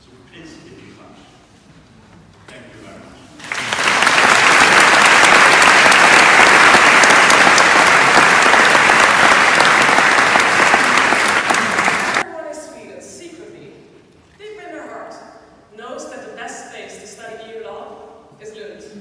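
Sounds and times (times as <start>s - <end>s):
audience applauding: 3.4s - 12.2s.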